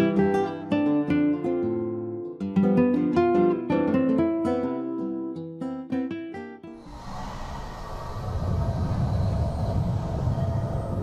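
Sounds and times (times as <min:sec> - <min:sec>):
low rumbling cinematic effect: 0:06.8 - 0:11.0.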